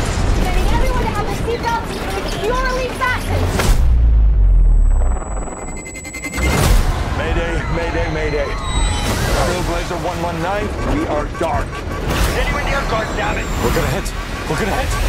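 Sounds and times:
trailer music: 0:02.8 - 0:15.0
deep loud boom: 0:03.5 - 0:05.3
sharp hit: 0:03.5 - 0:07.4
voices: 0:07.1 - 0:15.0.

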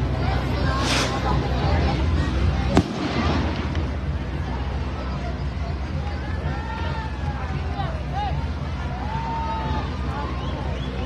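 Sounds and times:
crowd chatter: 0:00.0 - 0:11.0
firework rocket hissing: 0:00.6 - 0:01.6, 0:02.7 - 0:04.0
firework bang: 0:02.7 - 0:04.1.

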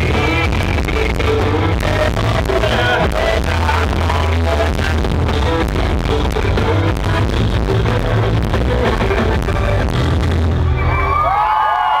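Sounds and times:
crowd cheering and whistling: 0:10.6 - 0:12.0
crowd whoops: 0:10.7 - 0:12.0.

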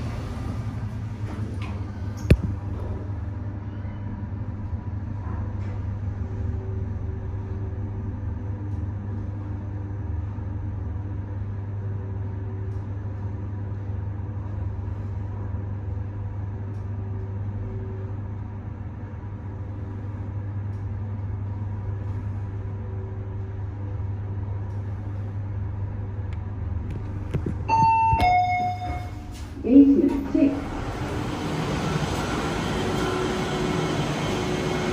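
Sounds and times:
lift hum: 0:00.0 - 0:34.9
two-note chime: 0:27.7 - 0:29.2.

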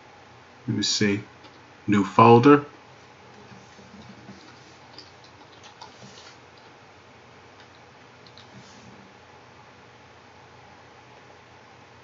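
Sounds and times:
steady low hiss: 0:00.0 - 0:12.0
keyboard keys clicking: 0:03.4 - 0:06.8, 0:07.6 - 0:08.7.

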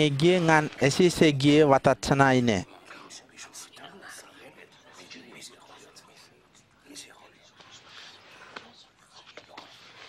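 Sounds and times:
whispered voices: 0:00.0 - 0:10.0.

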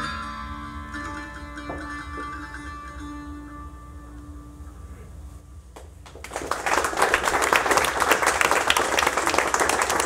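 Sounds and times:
lap dulcimer notes ringing: 0:00.0 - 0:04.9.

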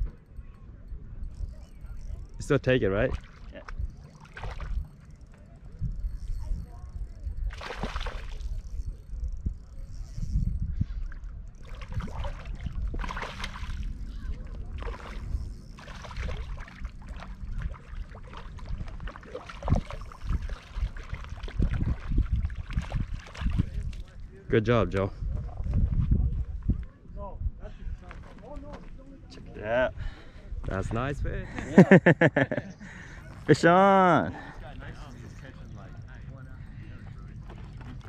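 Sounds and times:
fish splashing in water: 0:03.2 - 0:05.1, 0:07.4 - 0:08.6, 0:11.6 - 0:13.9, 0:14.5 - 0:23.6.

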